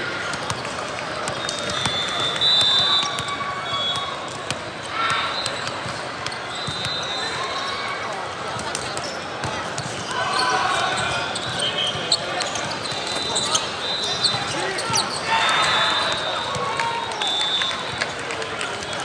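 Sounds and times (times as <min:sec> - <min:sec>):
hubbub of voices: 0:00.0 - 0:19.0
sneakers squeaking on court: 0:00.3 - 0:16.7
players calling out: 0:01.0 - 0:19.0.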